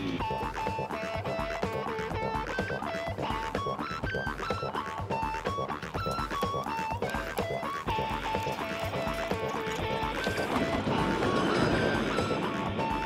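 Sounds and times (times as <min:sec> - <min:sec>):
bouncy melody over steady beat: 0:00.0 - 0:13.0.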